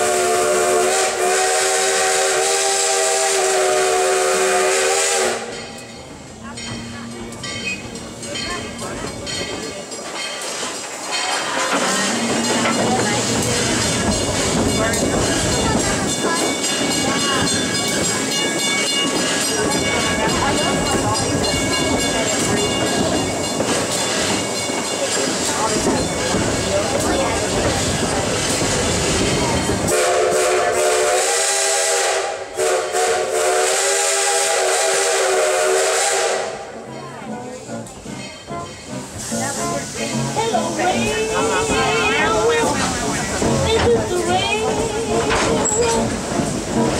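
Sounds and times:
steam whistle blowing: 0.0s - 5.6s, 29.9s - 36.7s
train cars rumbling on track: 0.0s - 46.9s
clickety-clack of wheels: 6.6s - 29.9s, 40.3s - 46.9s.

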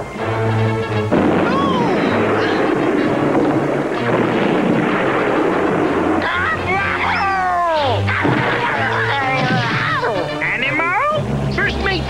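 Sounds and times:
rushing noise effect: 1.0s - 7.7s.

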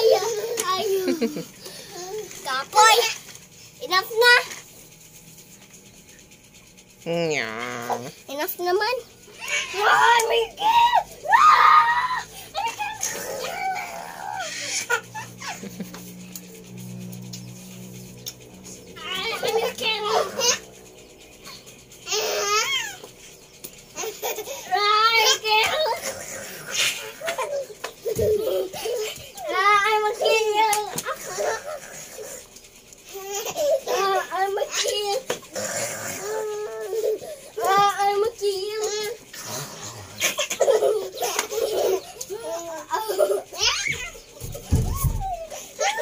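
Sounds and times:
children shrieking in play: 9.3s - 15.7s, 21.5s - 23.1s, 39.8s - 46.0s
child shouting: 9.4s - 14.7s, 29.4s - 31.0s, 43.6s - 44.2s.

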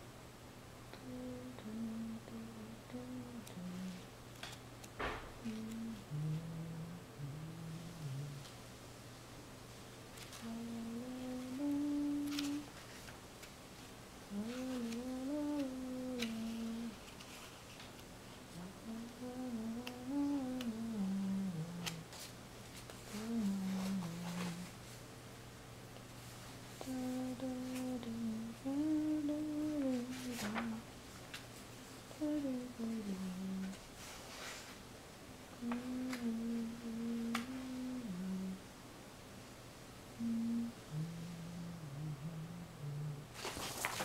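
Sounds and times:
person humming: 0.9s - 8.6s, 10.3s - 12.8s, 14.3s - 17.4s, 18.5s - 22.3s, 23.0s - 24.9s, 26.8s - 30.9s, 32.1s - 33.8s, 35.6s - 38.7s, 40.2s - 43.5s.

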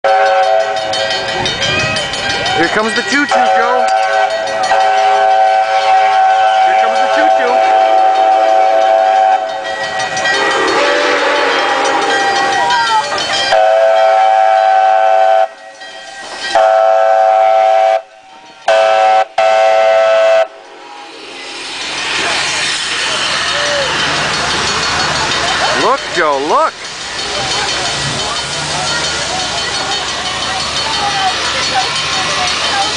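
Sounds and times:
steam locomotive passing: 0.0s - 32.9s
steam whistle long blasts: 0.1s - 1.2s, 3.4s - 9.7s, 10.3s - 12.4s, 13.5s - 15.6s, 16.5s - 20.6s
hiss of steam: 20.6s - 26.0s.

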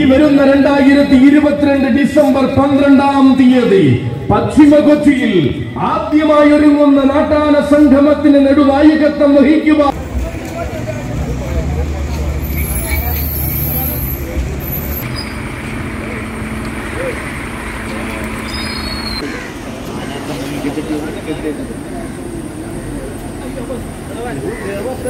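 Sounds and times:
men talking: 0.0s - 14.6s, 15.9s - 18.6s, 19.2s - 25.0s
heavy lorry engine rumbling: 0.0s - 25.0s.

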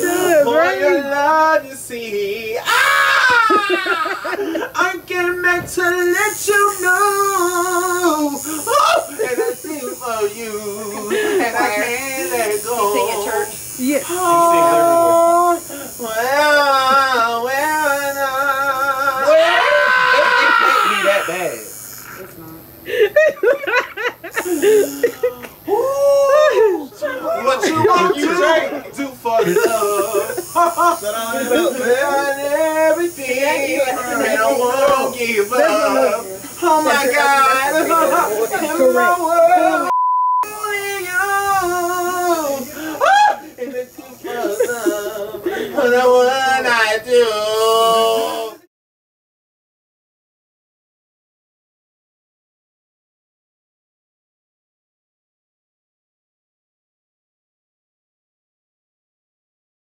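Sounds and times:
man crying out: 2.6s - 4.8s, 6.3s - 13.4s, 14.1s - 21.7s, 24.4s - 28.6s, 40.5s - 46.5s
man singing loudly: 4.8s - 13.4s, 14.1s - 21.3s, 37.0s - 43.5s, 44.2s - 48.7s
man wailing a sung note: 6.7s - 10.0s
censor bleep: 39.9s - 40.6s.

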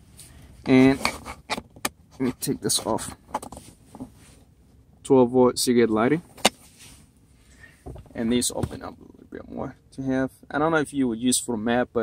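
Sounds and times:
quiet handling: 0.0s - 9.7s.

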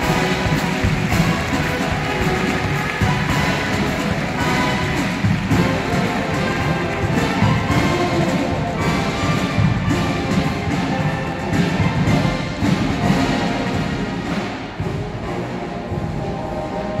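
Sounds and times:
brass instruments: 0.0s - 17.0s
drums and percussion: 0.0s - 17.0s.

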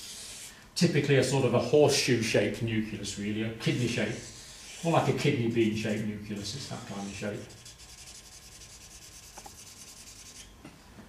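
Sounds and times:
marker pen shading on paper: 6.8s - 10.5s.

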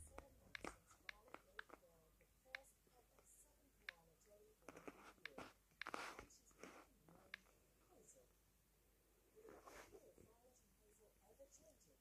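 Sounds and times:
fingertips tapping touchscreen: 0.0s - 7.6s
soft breathy rustle: 9.4s - 10.4s.

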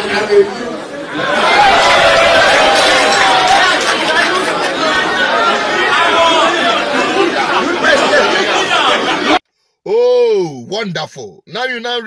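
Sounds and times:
crowd chattering: 0.0s - 9.4s
man speaking through microphone: 10.4s - 12.0s.

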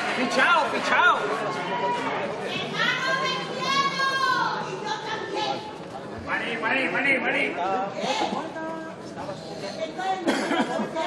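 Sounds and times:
murmur of hall: 0.0s - 11.0s.

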